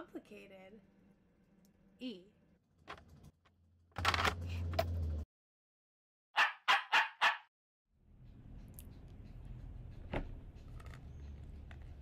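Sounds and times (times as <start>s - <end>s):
dog barking: 6.4s - 7.5s.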